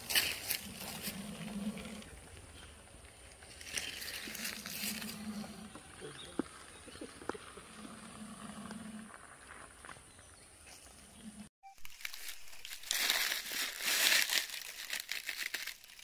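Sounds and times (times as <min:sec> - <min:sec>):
dry leaves crackling and rustling: 0:00.0 - 0:01.7, 0:03.2 - 0:05.2, 0:11.8 - 0:16.0.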